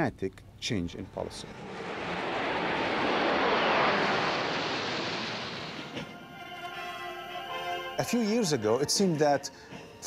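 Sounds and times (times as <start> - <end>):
military jets flying over: 1.1 - 6.3.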